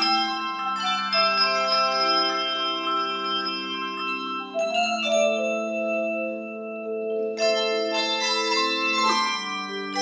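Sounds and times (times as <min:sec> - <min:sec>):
handbell chords ringing: 0:00.0 - 0:10.0.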